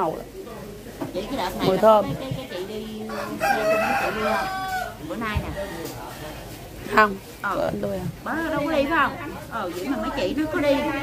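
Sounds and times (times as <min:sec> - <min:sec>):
rooster crowing: 0:03.1 - 0:05.9.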